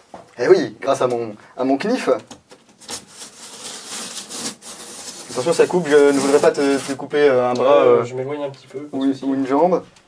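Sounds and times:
knife slicing parcel tape: 0:02.8 - 0:07.0.

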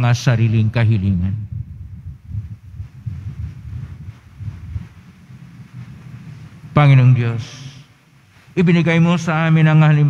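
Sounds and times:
low uneven background rumble: 0:00.0 - 0:10.0
faint hiss: 0:02.1 - 0:10.0.

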